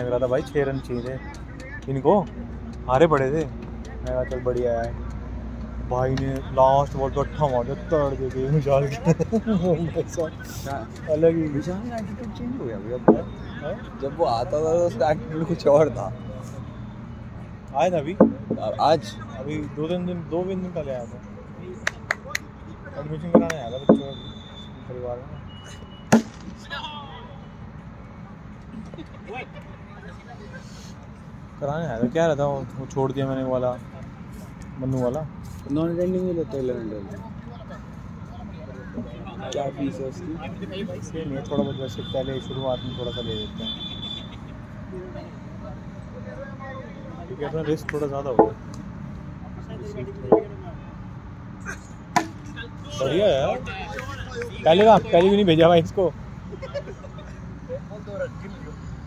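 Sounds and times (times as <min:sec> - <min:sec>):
cricket bat striking ball: 0:13.0 - 0:13.4, 0:18.2 - 0:18.7, 0:23.3 - 0:24.2, 0:26.1 - 0:26.8, 0:48.4 - 0:48.6, 0:52.1 - 0:52.5
faint tap: 0:48.4 - 0:48.8.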